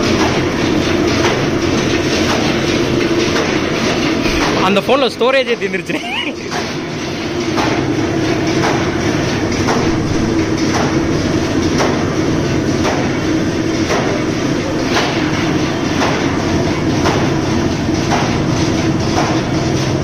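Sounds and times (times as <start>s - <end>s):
machine mechanical hum: 0.0s - 20.0s.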